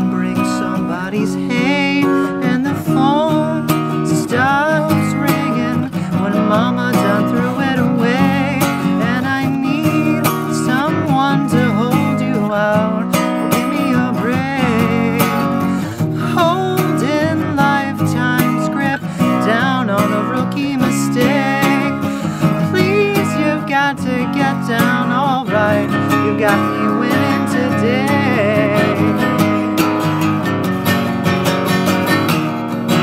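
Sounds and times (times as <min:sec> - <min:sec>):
acoustic guitar strumming: 0:00.0 - 0:33.0.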